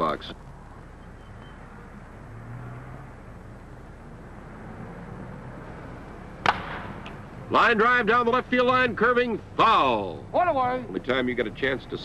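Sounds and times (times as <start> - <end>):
film soundtrack hiss and hum: 0.0 - 12.0
bat cracking against baseball: 6.4 - 7.2.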